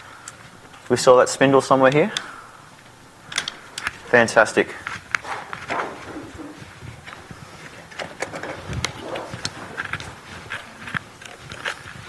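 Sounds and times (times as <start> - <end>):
room noise murmur: 0.0 - 12.0.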